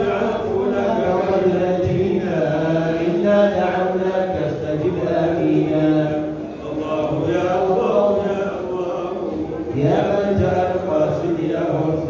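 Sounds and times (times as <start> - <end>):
man chanting over loudspeakers: 0.0 - 12.0.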